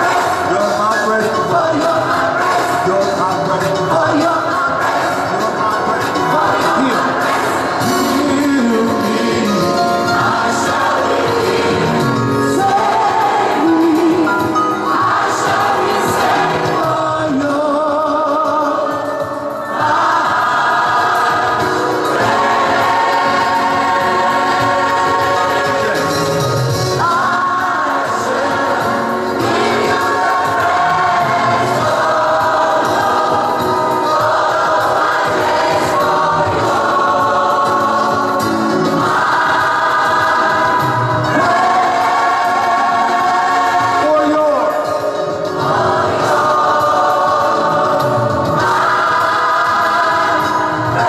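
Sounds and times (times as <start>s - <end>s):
choir singing long chords: 0.0s - 0.7s, 4.0s - 17.8s, 18.6s - 51.0s.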